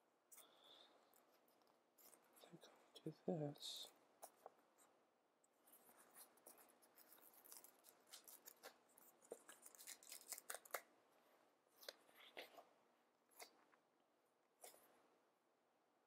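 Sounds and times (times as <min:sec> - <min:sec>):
paper sticker sheet crinkling: 0:05.7 - 0:10.9.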